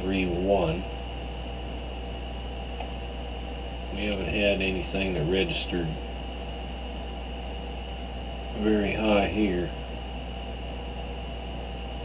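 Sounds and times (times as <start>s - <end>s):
high-pitched whine: 0.0s - 12.0s
low hum and hiss: 0.0s - 12.0s.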